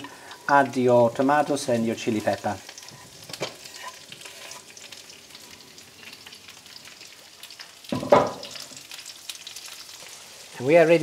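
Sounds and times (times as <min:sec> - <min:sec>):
food sizzling in frying pan: 0:00.0 - 0:11.0.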